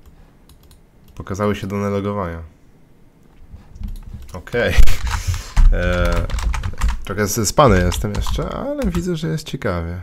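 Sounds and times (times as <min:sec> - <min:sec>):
computer keyboard typing: 0:00.5 - 0:01.8, 0:03.8 - 0:09.2.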